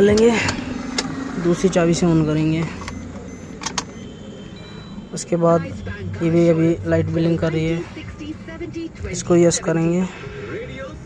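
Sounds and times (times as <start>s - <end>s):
faint high steady tone: 2.0s - 7.5s
ignition key clicks: 2.4s - 4.1s.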